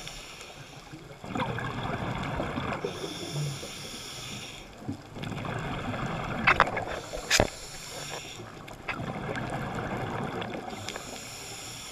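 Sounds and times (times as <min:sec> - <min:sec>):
muffled underwater hiss and rush: 0:00.0 - 0:11.9
cluster of clicks: 0:06.4 - 0:09.0.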